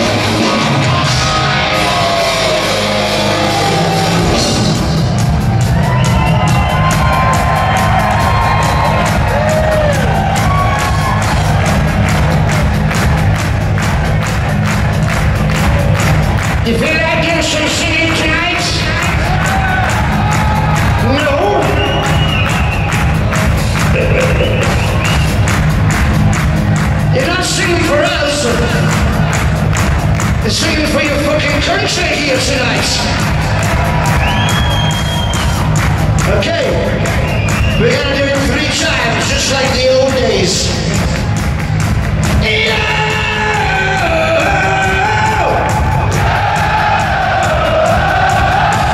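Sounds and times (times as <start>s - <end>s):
heavy metal band playing live: 0.0s - 22.4s
audience cheering and whooping: 0.0s - 30.3s, 31.0s - 48.9s.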